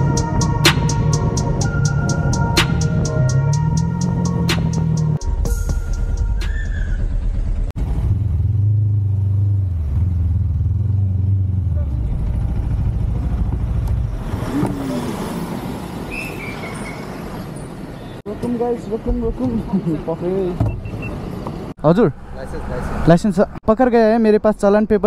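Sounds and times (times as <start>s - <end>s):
motorcycle engine: 0.0s - 15.9s
road noise: 0.0s - 25.0s.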